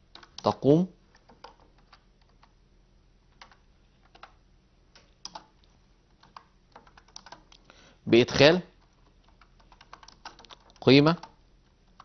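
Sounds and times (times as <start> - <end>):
keystrokes on computer keyboard: 0.0 - 2.6, 3.3 - 7.6, 8.8 - 12.0.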